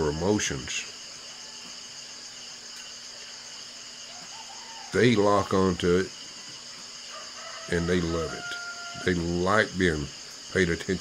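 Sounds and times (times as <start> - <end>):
insects chorus buzzing: 0.0 - 11.0.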